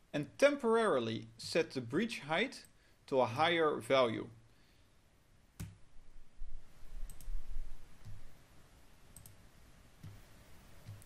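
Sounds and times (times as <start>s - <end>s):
computer mouse clicking: 7.0s - 7.4s, 8.0s - 8.2s, 9.1s - 9.4s, 10.0s - 10.2s, 10.8s - 11.0s.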